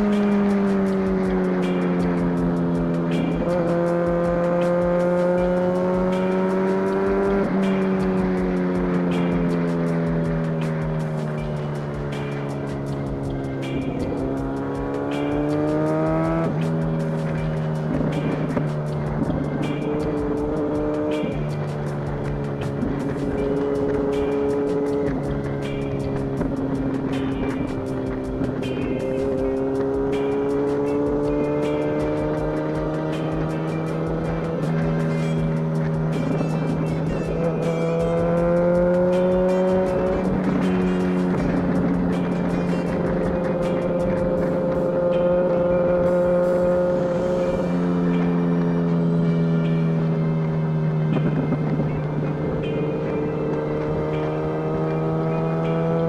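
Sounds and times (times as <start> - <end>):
hip-hop beat: 0.0 - 50.0
motorcycle engine running: 0.0 - 56.0.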